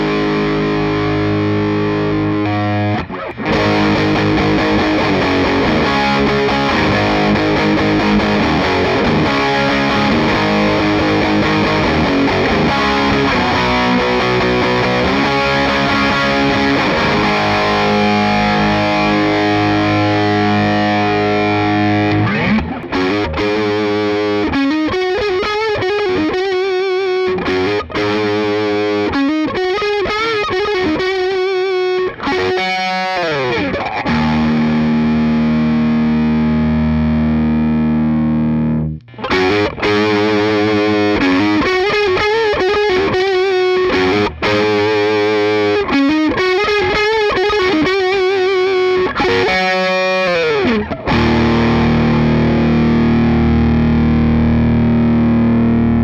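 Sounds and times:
distorted electric guitar: 0.0s - 56.0s.

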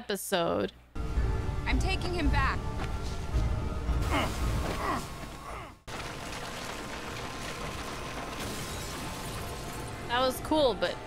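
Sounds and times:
man grunting with strain: 4.0s - 5.8s.

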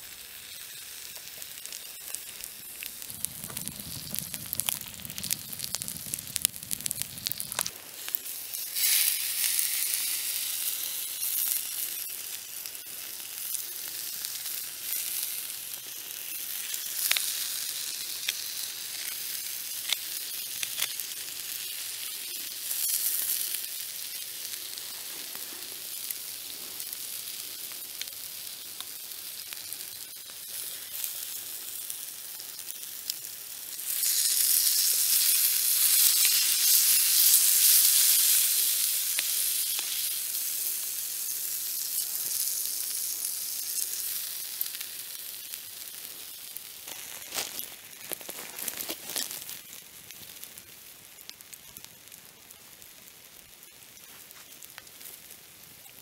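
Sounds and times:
steak sizzling on hot stone: 0.0s - 56.0s.

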